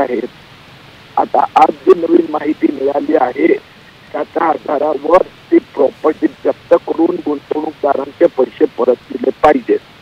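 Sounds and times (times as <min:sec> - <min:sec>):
man speaking over telephone: 0:00.0 - 0:00.3, 0:01.2 - 0:09.8.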